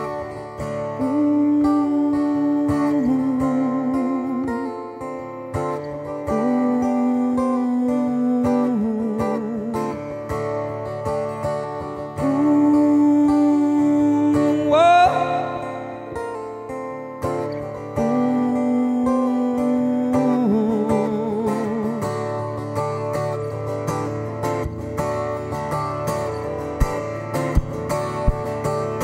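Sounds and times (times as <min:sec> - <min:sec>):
acoustic guitar strumming: 0:00.0 - 0:29.0
man singing wordless notes: 0:00.8 - 0:05.0, 0:06.3 - 0:10.1, 0:12.2 - 0:16.4, 0:17.9 - 0:22.5.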